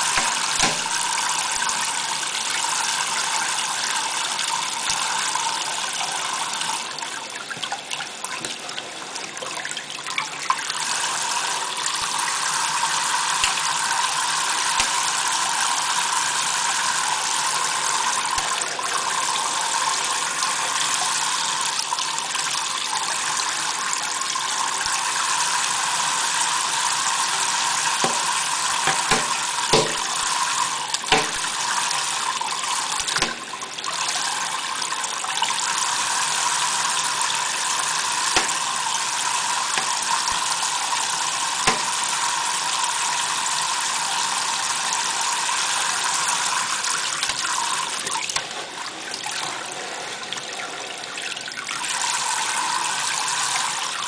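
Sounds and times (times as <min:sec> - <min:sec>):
water falling into steel sink: 0:00.0 - 0:01.7, 0:11.8 - 0:15.3, 0:18.0 - 0:18.7, 0:27.9 - 0:33.6, 0:36.9 - 0:42.3, 0:46.6 - 0:48.5
faucet spray running: 0:00.0 - 0:06.8, 0:10.6 - 0:48.6, 0:51.8 - 0:54.0.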